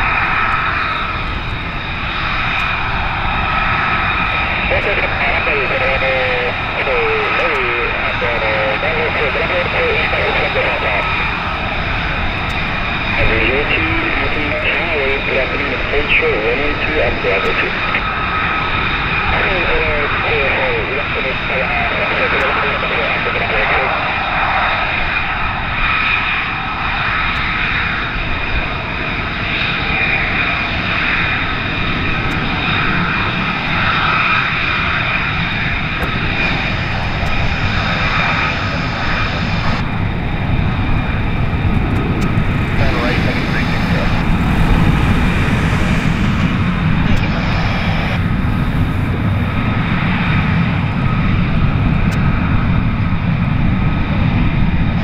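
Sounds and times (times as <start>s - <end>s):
jet engines whining: 0.0s - 55.0s
low rumble: 36.0s - 55.0s.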